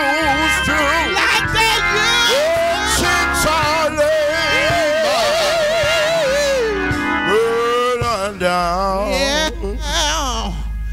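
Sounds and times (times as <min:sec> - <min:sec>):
person singing with vibrato: 0:00.0 - 0:10.7
instrumental accompaniment: 0:00.0 - 0:10.9.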